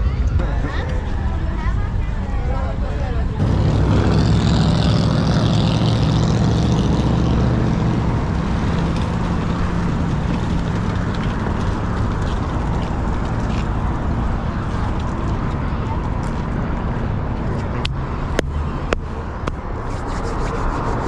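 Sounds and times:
bus engine passing: 0.0 - 21.0
traffic noise: 0.0 - 21.0.

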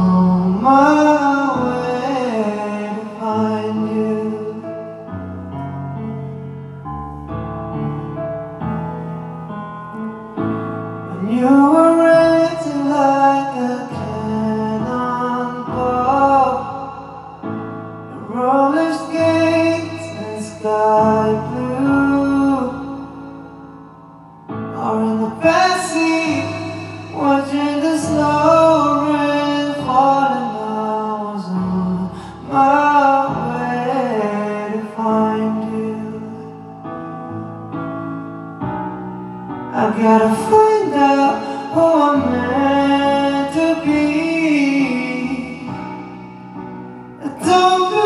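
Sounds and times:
man singing a slow ballad: 0.0 - 6.4, 11.0 - 23.6, 24.6 - 37.6, 39.7 - 48.0
backing track music: 0.0 - 48.0
sustained piano chords: 0.0 - 48.0.

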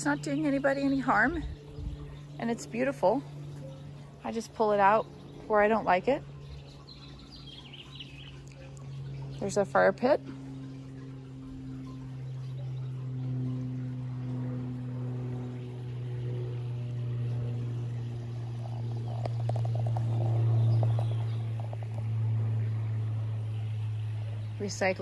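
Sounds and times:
steady low hum: 0.0 - 25.0.

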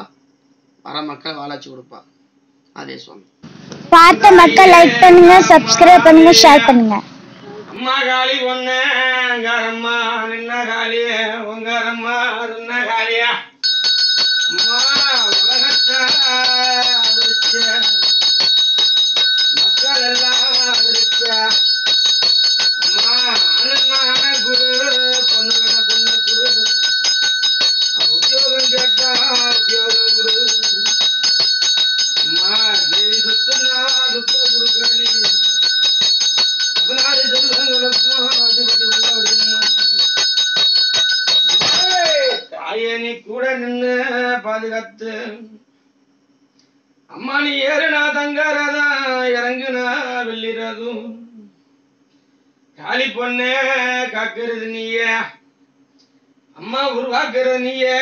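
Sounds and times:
bell ringing rapidly: 3.9 - 7.0, 13.6 - 42.6
man chanting: 4.0 - 13.5, 19.6 - 21.6, 22.9 - 26.8, 28.0 - 31.0, 32.2 - 35.4, 36.8 - 39.8.

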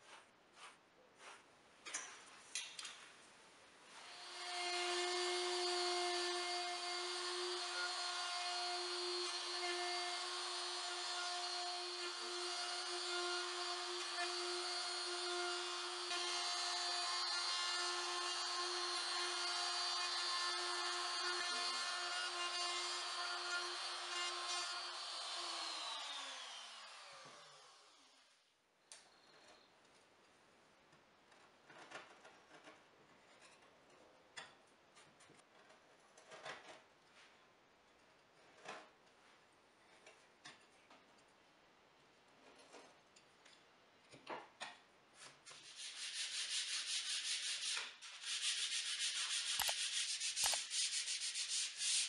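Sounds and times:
router motor cutting wood: 4.2 - 28.2.

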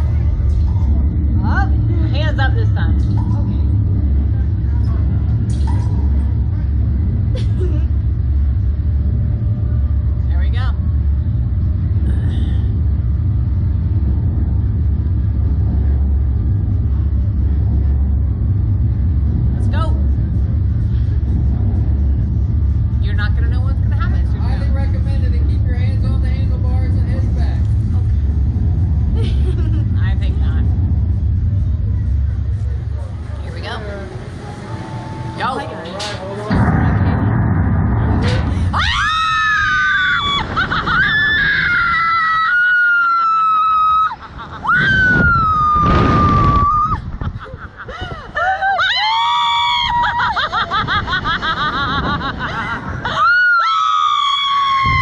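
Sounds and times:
heavy low rumble: 0.0 - 55.0
women screaming: 38.7 - 47.1, 47.9 - 50.9, 53.0 - 55.0.

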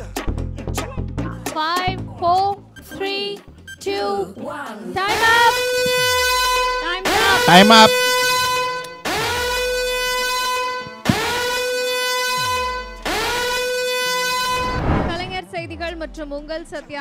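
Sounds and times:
buzzer blasts: 5.1 - 14.9
voices: 6.9 - 8.0.

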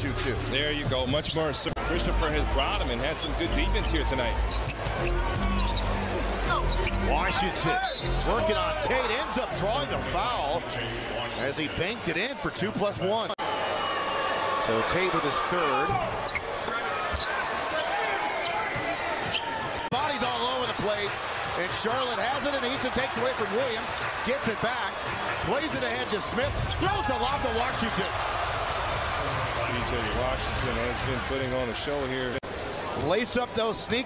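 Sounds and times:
arena crowd noise: 0.0 - 34.0.

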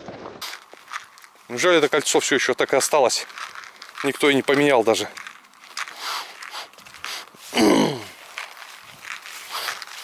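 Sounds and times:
footsteps on grass and asphalt: 0.0 - 10.0
person sighing: 7.4 - 8.2.

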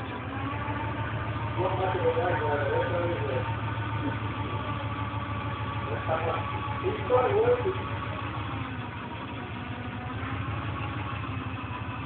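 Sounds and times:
off-road vehicle engine idling: 0.0 - 12.0.

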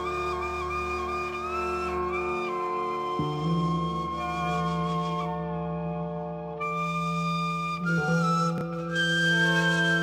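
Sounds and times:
shakuhachi flute melody: 0.0 - 10.0.

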